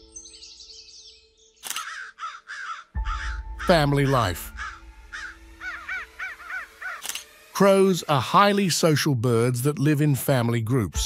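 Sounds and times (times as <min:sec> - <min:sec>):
soft sustained music: 0:00.0 - 0:01.6, 0:03.0 - 0:11.0
crows cawing: 0:01.7 - 0:07.2
small birds chirping: 0:04.5 - 0:07.0.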